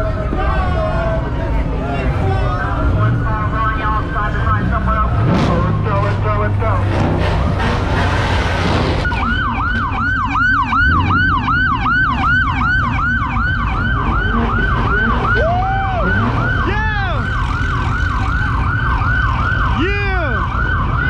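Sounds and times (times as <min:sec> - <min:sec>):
police siren fast yelp: 0:09.0 - 0:21.0
second siren whoops: 0:09.1 - 0:21.0.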